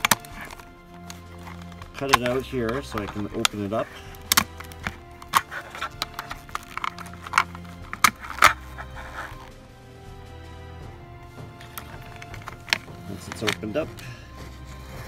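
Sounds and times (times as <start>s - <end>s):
plastic snapping and cracking: 0.0s - 9.6s, 11.3s - 14.1s
background music: 0.0s - 15.0s.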